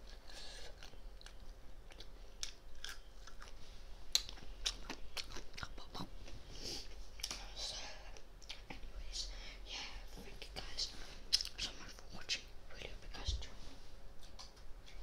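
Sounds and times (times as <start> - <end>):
person whispering close up: 7.4 - 13.8.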